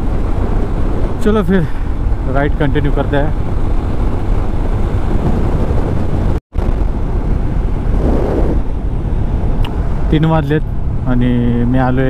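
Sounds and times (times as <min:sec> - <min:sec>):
motorcycle engine: 0:00.0 - 0:12.0
road noise: 0:00.0 - 0:12.0
wind rushing on microphone: 0:00.0 - 0:12.0.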